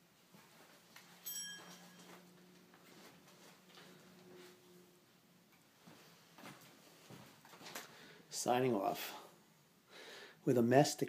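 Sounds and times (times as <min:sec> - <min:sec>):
low steady hum: 0:00.0 - 0:10.0
soft rustling: 0:00.2 - 0:04.8, 0:05.7 - 0:08.0.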